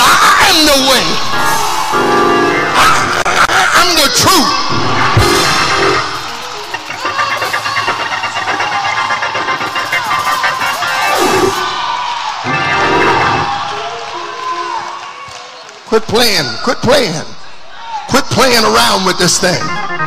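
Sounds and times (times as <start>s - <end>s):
congregation cheering and shouting: 0.0s - 20.0s
church music: 0.8s - 3.4s, 4.4s - 11.8s, 12.4s - 15.0s
fast rhythmic beat: 5.0s - 13.3s.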